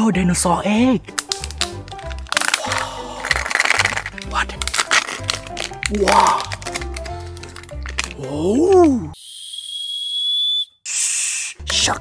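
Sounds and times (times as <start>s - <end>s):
high steady whistle: 9.2s - 11.6s.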